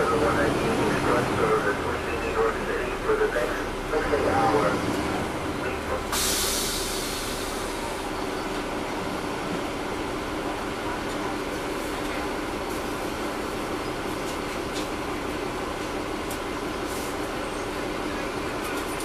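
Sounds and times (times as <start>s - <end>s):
bus diesel engine droning: 0.0s - 19.0s
air hiss: 6.1s - 7.7s.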